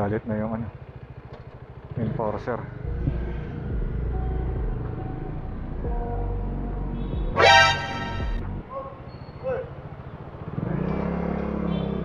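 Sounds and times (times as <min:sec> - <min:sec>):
motorcycle engine pulling away: 0:00.2 - 0:05.6, 0:09.0 - 0:12.0.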